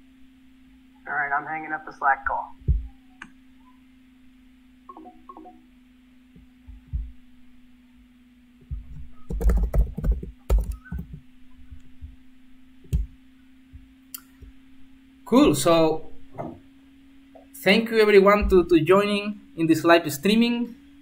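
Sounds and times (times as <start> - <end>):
low electrical hum: 0.0 - 21.0
keyboard and mouse clicks: 8.7 - 11.2.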